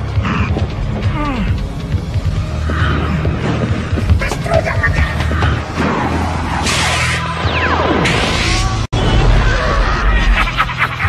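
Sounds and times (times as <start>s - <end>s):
sci-fi music with low bass: 0.0s - 11.0s.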